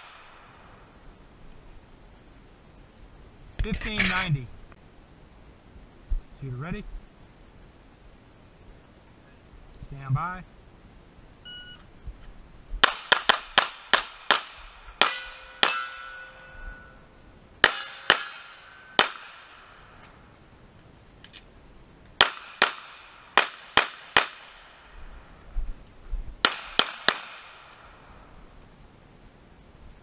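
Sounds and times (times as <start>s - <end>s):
pistol shots: 12.8s - 16.3s, 17.6s - 19.7s, 22.2s - 24.6s, 26.4s - 27.9s
steel targets ringing: 15.0s - 19.6s.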